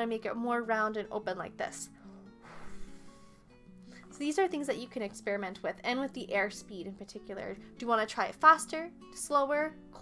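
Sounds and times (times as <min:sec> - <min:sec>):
soft background music: 0:00.0 - 0:10.0
breathy blowing through lips: 0:02.0 - 0:04.1.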